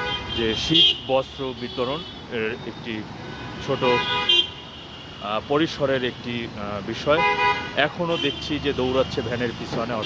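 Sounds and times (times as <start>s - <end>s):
road traffic rumble: 0.0s - 10.0s
people talking: 0.4s - 3.1s, 5.2s - 7.2s, 7.8s - 10.0s
vehicle horn toot: 3.7s - 4.6s, 7.2s - 8.5s.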